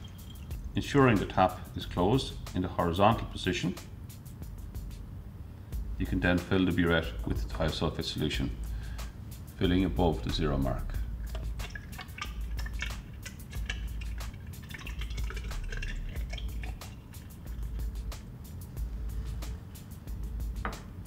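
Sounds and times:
liquid trickling and dripping: 0.0 - 1.9, 10.8 - 18.2.

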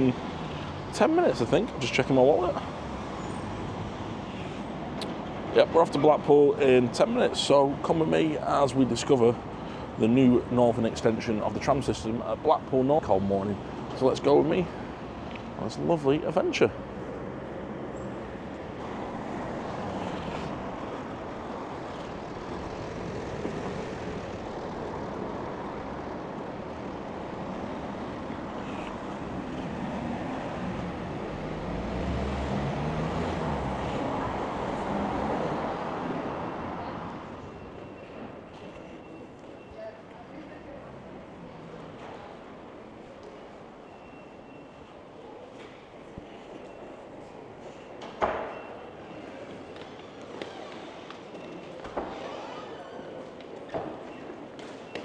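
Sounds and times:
street traffic: 0.0 - 55.0
vehicle passing: 16.9 - 37.4
station concourse ambience: 36.1 - 55.0
faint short beeps: 43.8 - 44.9, 47.8 - 49.4.

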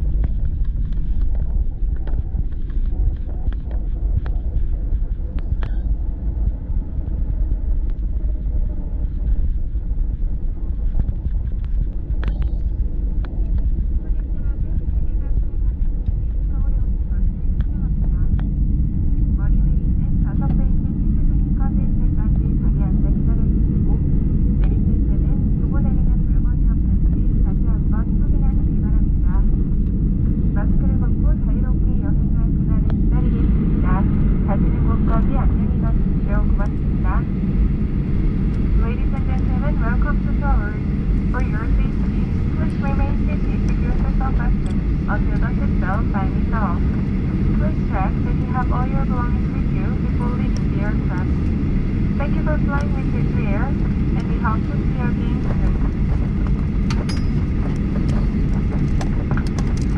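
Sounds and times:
jet engines idling: 0.0 - 59.9
voices: 13.3 - 18.5, 19.3 - 29.6, 30.4 - 51.4, 52.2 - 56.8.

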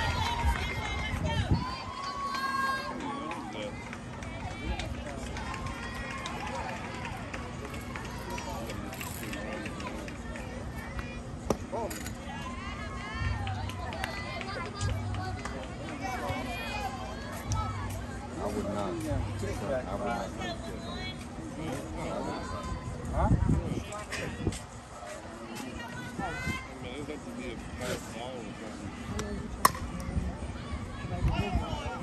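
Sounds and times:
chatter of spectators: 0.0 - 32.0.

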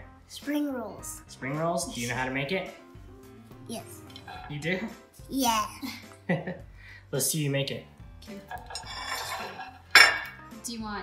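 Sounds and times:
ceramic dishes on stone countertop: 4.0 - 4.6, 8.5 - 10.4
loud plate clink: 8.6 - 10.4.

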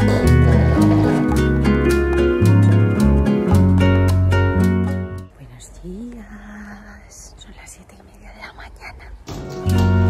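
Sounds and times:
acoustic guitar music: 0.0 - 5.3, 9.3 - 10.0.

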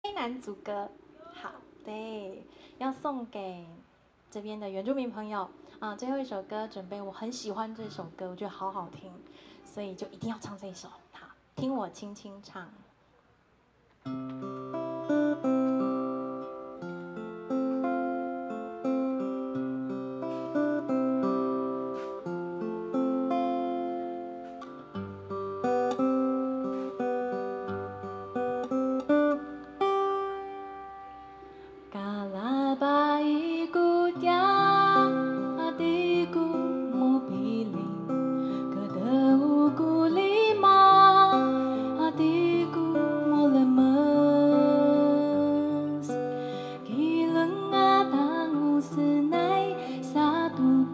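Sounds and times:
acoustic guitar playing: 14.0 - 50.9
woman singing: 31.9 - 50.9.

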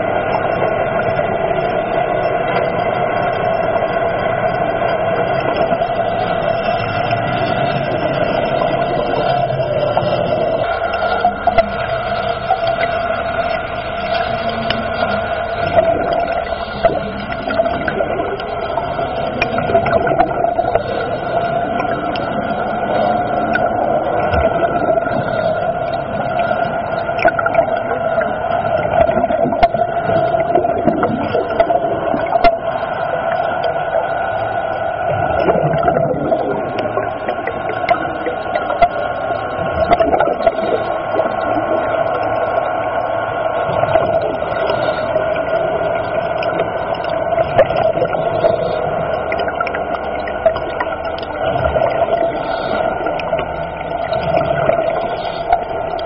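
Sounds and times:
crackling hiss: 0.0 - 56.0
underwater two-tone drone: 0.0 - 56.0.

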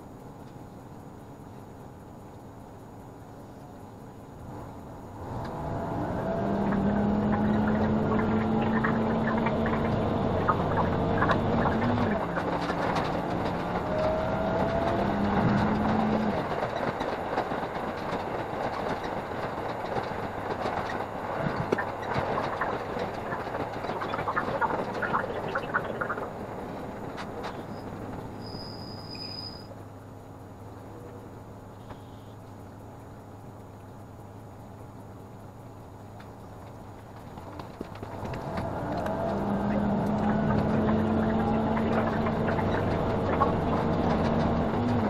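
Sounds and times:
diesel railcar engine: 0.0 - 45.0
wheel and rail noise: 0.0 - 45.0
rail clicks: 6.6 - 28.8, 36.1 - 45.0.

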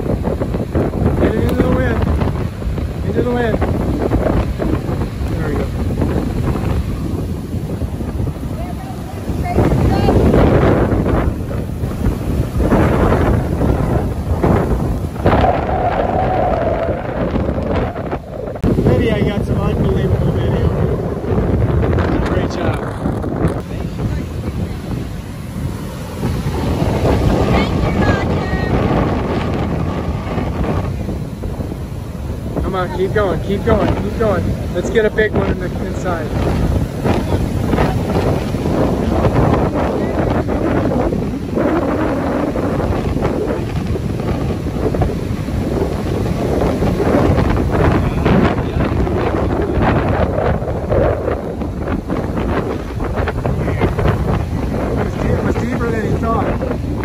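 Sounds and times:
gusting wind buffeting microphone: 0.0 - 57.0
heavy surf breaking: 0.0 - 57.0.

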